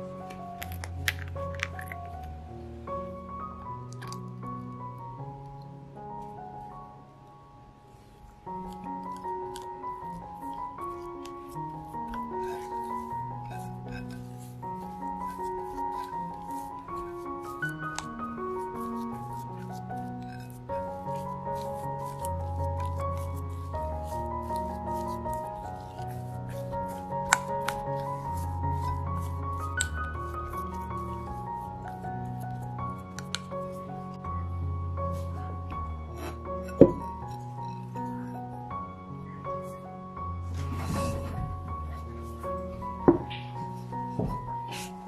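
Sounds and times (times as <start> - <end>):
soft background music: 0.0 - 45.0
spatula scraping mashed potato: 8.5 - 33.9.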